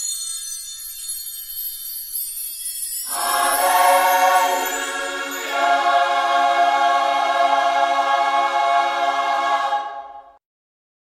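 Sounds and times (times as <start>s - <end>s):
choir holding chords: 3.1s - 10.4s.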